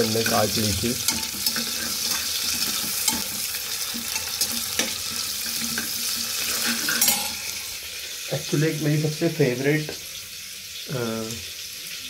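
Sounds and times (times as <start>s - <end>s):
onions sizzling in oil: 0.0s - 12.0s
ladle scraping and clicking pot: 1.0s - 7.4s.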